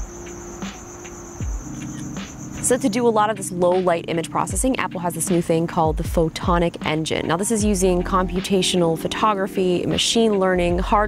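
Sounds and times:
crickets trilling: 0.0s - 5.2s.

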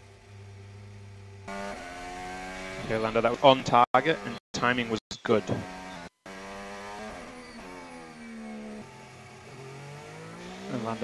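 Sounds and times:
racing car engine running: 0.0s - 11.0s.

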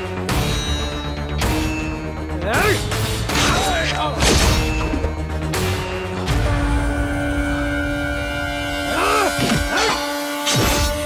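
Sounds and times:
held orchestral chords: 5.0s - 10.4s.

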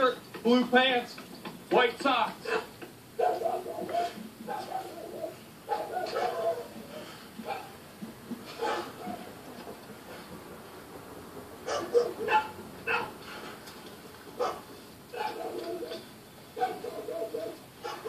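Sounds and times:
dog barking through a tv speaker: 2.4s - 7.8s, 8.5s - 9.4s, 11.6s - 13.2s, 14.4s - 16.0s, 16.6s - 18.0s.

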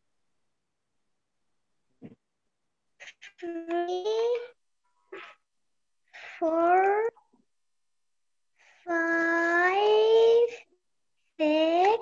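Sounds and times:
young girl counting aloud: 3.4s - 4.6s, 6.3s - 7.2s, 8.8s - 10.7s, 11.4s - 12.0s.

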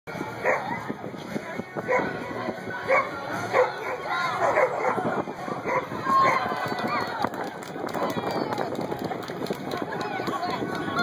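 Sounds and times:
crowd chatter: 0.1s - 11.0s
dog barking: 0.4s - 0.6s, 2.9s - 5.0s.

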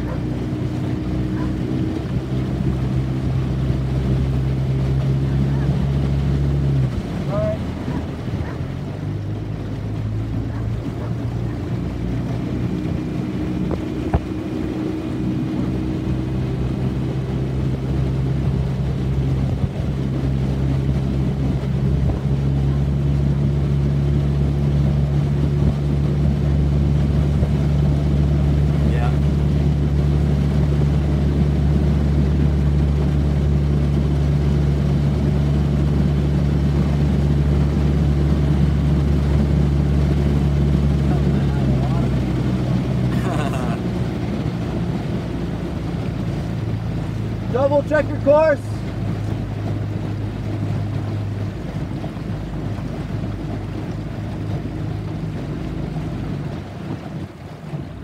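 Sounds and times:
outboard motor humming: 0.0s - 58.0s
water: 0.0s - 58.0s
wind noise: 12.3s - 22.8s.

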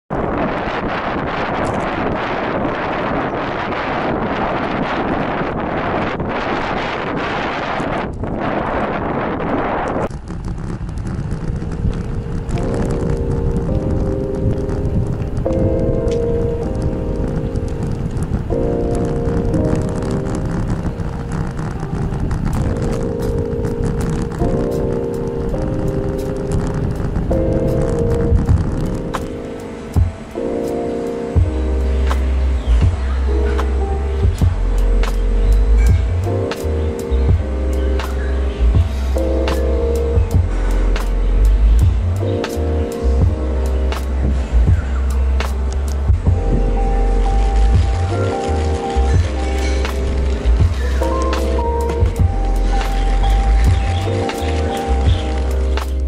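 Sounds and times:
wind rushing over microphone: 0.1s - 56.0s
low rumble: 0.2s - 30.5s, 31.3s - 56.0s
music with slow held notes: 11.6s - 56.0s.

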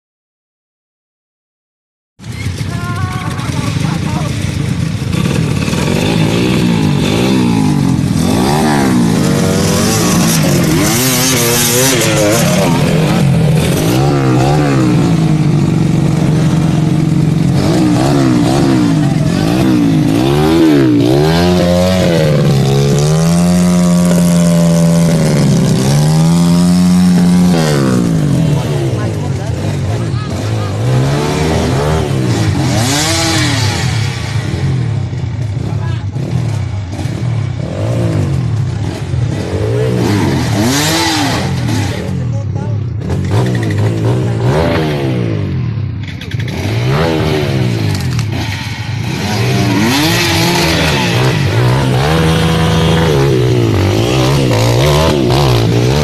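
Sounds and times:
motorcycle engines revving: 2.2s - 56.0s.

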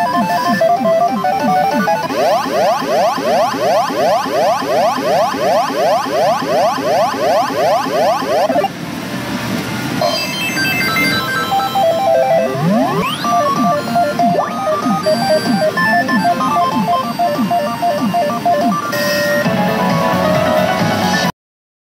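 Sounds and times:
pachinko machine electronic music: 0.0s - 8.8s, 10.0s - 21.3s.

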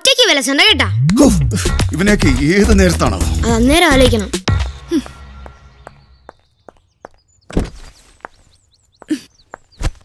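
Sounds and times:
footsteps on brick paving: 4.5s - 10.0s.

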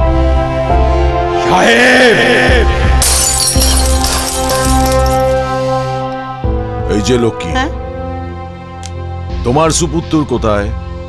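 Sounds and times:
dramatic background music: 0.0s - 11.0s
glass shattering: 3.0s - 5.5s.

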